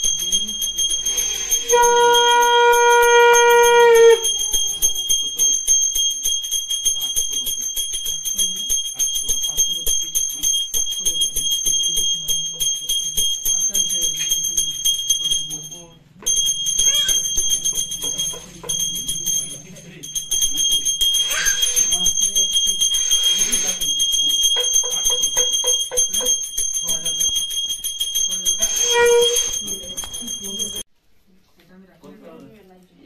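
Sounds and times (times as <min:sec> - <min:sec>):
hand bell ringing rapidly: 0:00.0 - 0:30.9
conch shell blown: 0:01.3 - 0:04.4, 0:28.6 - 0:29.6.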